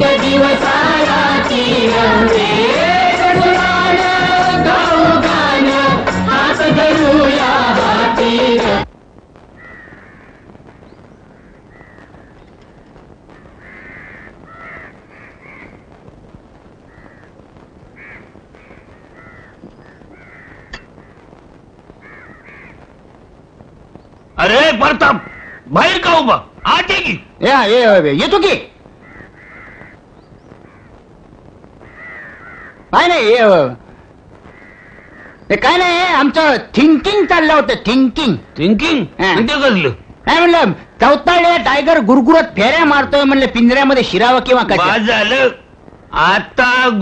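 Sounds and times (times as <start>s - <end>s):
faint low background noise: 0.0s - 47.0s
steady background hiss: 0.0s - 47.0s
crows cawing: 9.6s - 15.9s, 16.8s - 21.3s, 22.0s - 22.9s, 25.0s - 25.8s, 28.9s - 31.1s, 31.8s - 32.9s, 33.9s - 35.5s.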